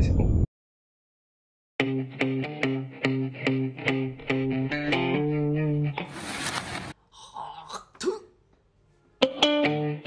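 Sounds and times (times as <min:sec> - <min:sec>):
person clearing throat: 0:07.5 - 0:08.4.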